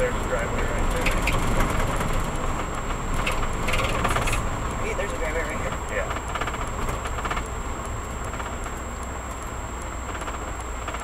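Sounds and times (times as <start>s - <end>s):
vehicle engine and tyres rumbling: 0.0s - 11.0s
rapid rattling and clinking: 0.2s - 8.8s.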